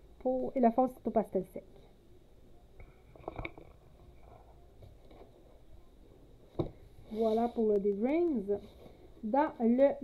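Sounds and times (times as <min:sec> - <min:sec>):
book cover knocking shut: 0:06.6 - 0:06.8.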